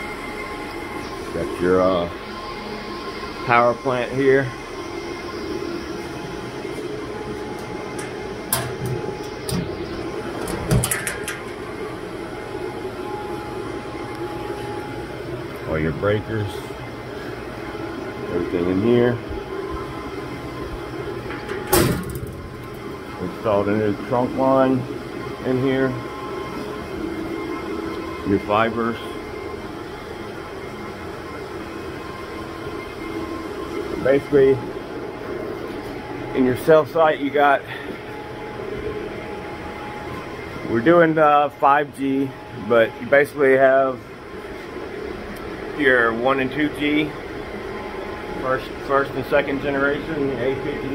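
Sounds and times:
cooling fans whirring: 0.0s - 50.9s
faint steady whine: 0.0s - 50.9s.

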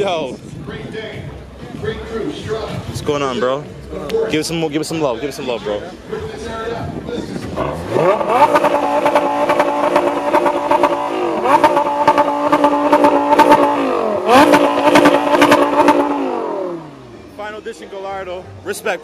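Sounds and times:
sports car engine revving: 7.4s - 17.6s.

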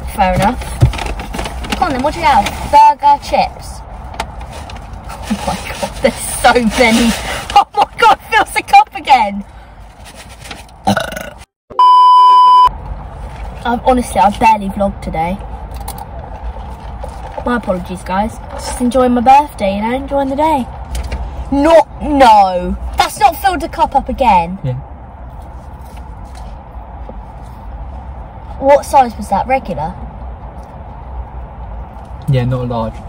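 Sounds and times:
car cabin hum: 0.0s - 6.9s
censor bleep: 11.7s - 12.7s
faint clicks and rustles: 15.4s - 18.9s.

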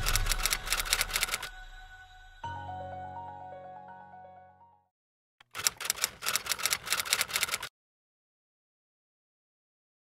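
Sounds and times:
typewriter key clicks: 5.4s - 7.7s.

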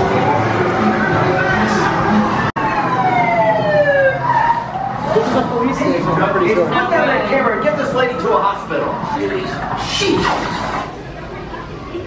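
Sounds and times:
siren wail falling in pitch: 0.0s - 9.8s.

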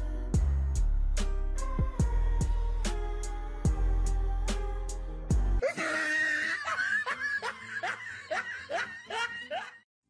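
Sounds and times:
cartoon snickering laughter: 5.6s - 9.8s.

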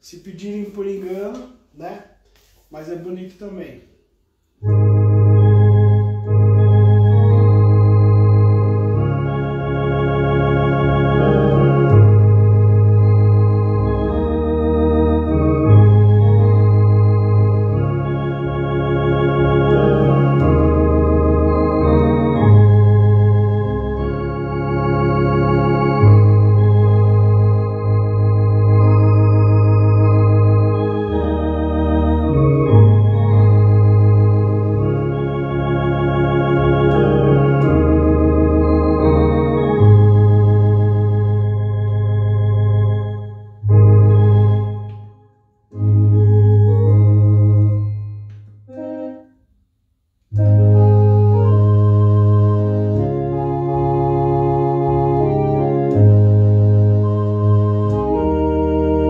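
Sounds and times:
electronic organ playing a hymn: 4.6s - 49.4s, 50.2s - 59.0s.

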